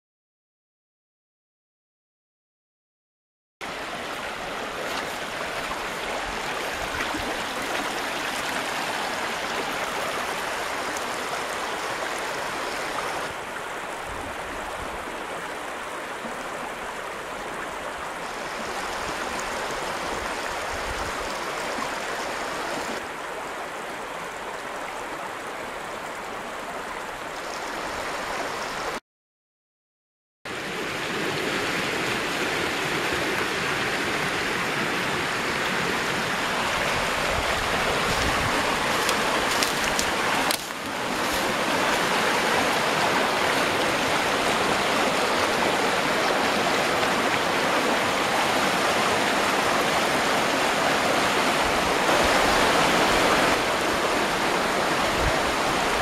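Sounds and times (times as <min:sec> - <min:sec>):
river rapids roaring: 0:03.7 - 0:17.5, 0:30.5 - 0:56.0.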